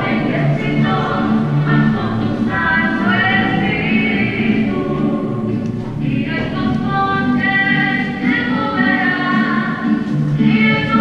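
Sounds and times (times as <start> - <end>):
choir singing held notes: 0.0 - 11.0.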